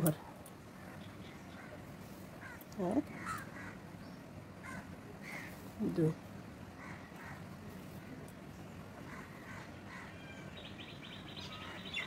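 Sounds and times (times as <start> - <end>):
faint crows cawing: 0.7 - 5.8, 6.6 - 8.3, 8.9 - 12.0.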